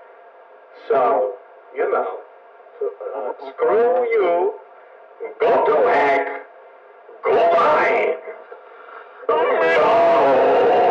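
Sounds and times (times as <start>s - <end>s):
man speaking: 2.8s - 4.6s, 5.2s - 6.5s, 7.1s - 8.6s, 9.3s - 10.7s
man yelling: 9.3s - 10.9s.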